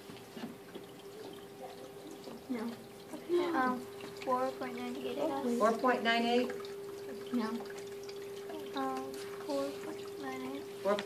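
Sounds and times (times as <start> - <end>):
faint running water: 0.0 - 11.0
steady hum: 0.4 - 11.0.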